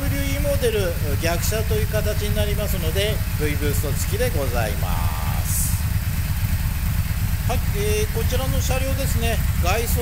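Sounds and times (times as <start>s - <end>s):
motorcycle engine idling: 0.0s - 10.0s.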